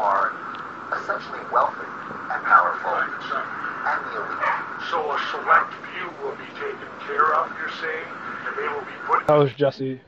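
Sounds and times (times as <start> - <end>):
men talking through speakers: 0.0 - 10.0.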